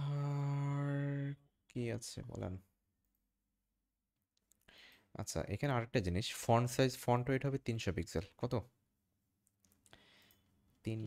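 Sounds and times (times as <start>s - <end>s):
man talking: 1.7s - 2.7s.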